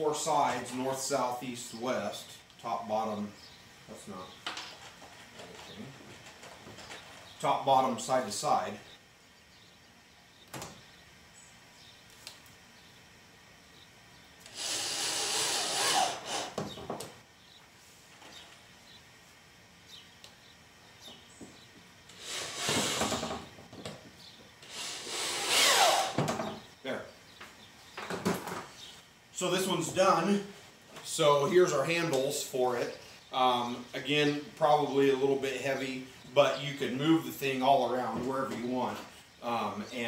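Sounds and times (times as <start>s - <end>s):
electric drill driving screws: 14.4s - 16.8s, 22.1s - 23.4s, 24.6s - 26.4s.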